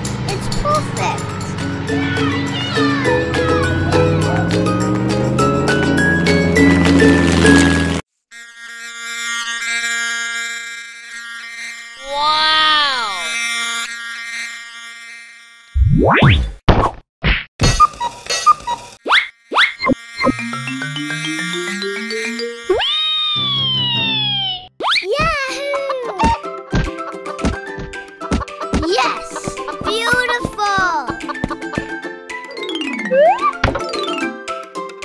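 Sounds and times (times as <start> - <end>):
children's jingle: 0.3 - 6.8, 32.3 - 35.0
rising scale of notes: 1.3 - 8.0, 31.5 - 34.8
falling whistle-like tone: 22.7 - 25.0
sharp knocks: 33.6 - 33.9.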